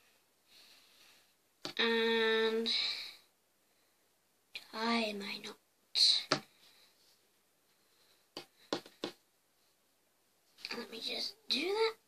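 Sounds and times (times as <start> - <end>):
child whispering: 1.8 - 3.2, 4.6 - 6.3, 10.6 - 12.0.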